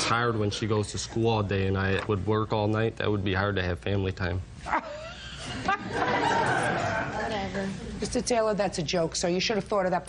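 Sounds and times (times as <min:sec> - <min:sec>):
audience laughing and chattering: 0:04.7 - 0:08.1.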